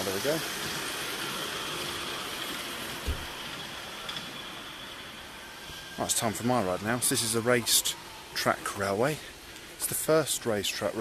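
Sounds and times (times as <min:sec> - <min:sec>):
miniature train running past: 0:00.0 - 0:11.0.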